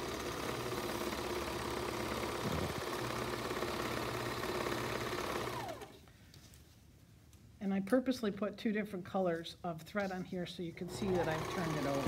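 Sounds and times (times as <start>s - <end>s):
overlock sewing machine running: 0.0s - 5.9s, 10.9s - 12.0s.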